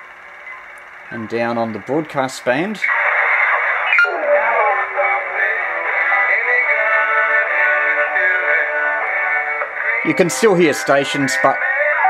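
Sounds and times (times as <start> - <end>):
thin radio music: 0.0 - 12.0.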